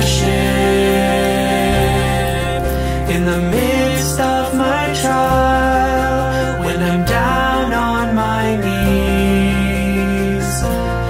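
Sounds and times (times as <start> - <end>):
choir singing long notes: 0.0 - 10.6
instrumental accompaniment: 0.0 - 11.0.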